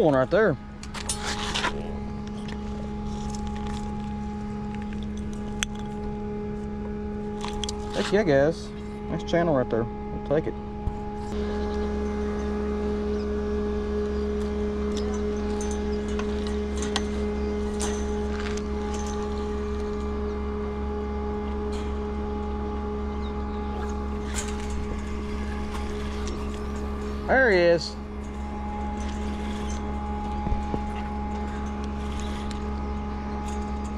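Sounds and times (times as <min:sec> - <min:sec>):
steady low hum: 0:00.0 - 0:33.9.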